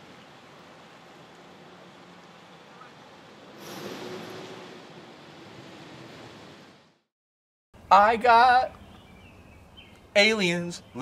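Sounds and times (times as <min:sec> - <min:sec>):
traffic hiss on wet road: 0:00.0 - 0:07.0
man speaking: 0:07.9 - 0:08.7, 0:10.2 - 0:11.0.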